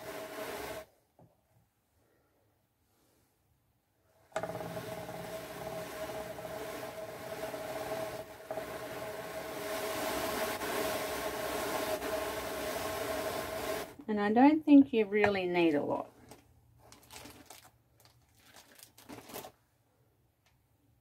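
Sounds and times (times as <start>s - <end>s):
drum carder whirring: 0.0s - 0.9s, 4.3s - 14.0s.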